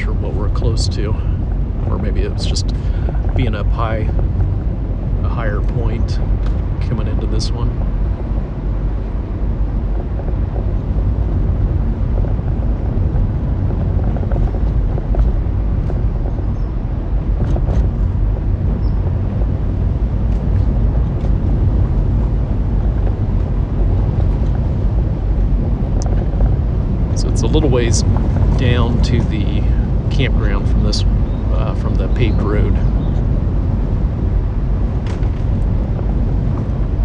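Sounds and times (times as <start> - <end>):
vehicle driving on gravel: 0.0 - 37.0.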